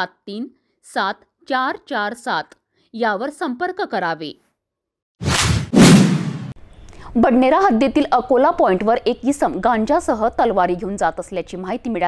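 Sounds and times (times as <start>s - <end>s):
whoosh swishes: 5.2s - 6.6s.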